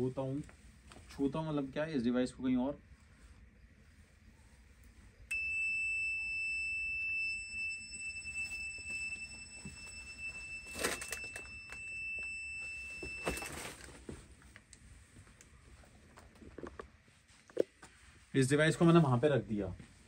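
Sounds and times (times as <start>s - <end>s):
steady high electronic beep: 5.3s - 13.5s.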